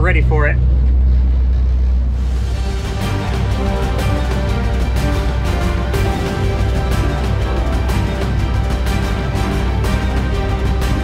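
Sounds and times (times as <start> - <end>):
background music: 0.0 - 11.0
boat engines droning: 0.0 - 11.0.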